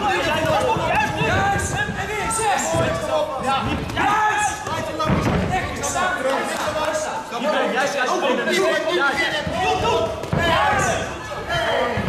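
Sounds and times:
people shouting and talking: 0.0 - 12.0.

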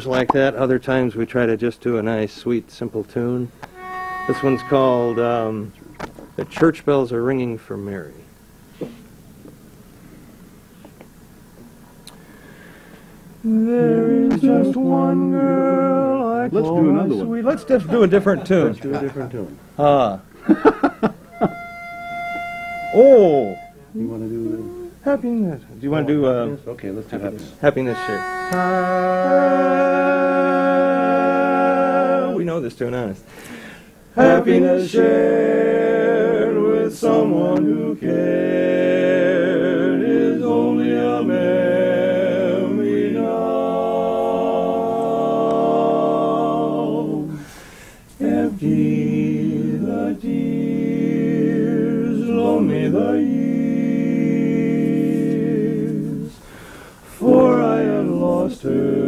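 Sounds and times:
pitch pipe note: 3.6 - 5.7, 21.3 - 24.9, 27.7 - 30.3
male quartet singing a cappella: 3.7 - 5.7, 13.3 - 18.6, 20.6 - 25.0, 27.7 - 59.0
singers breathing: 12.1 - 13.3, 33.2 - 34.1, 47.3 - 48.2, 56.4 - 57.2.

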